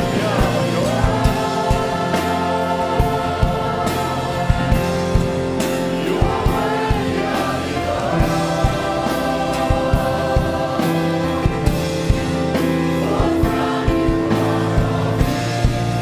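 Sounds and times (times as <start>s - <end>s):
band with keyboard: 0.0s - 16.0s
choir singing gospel song: 0.0s - 16.0s.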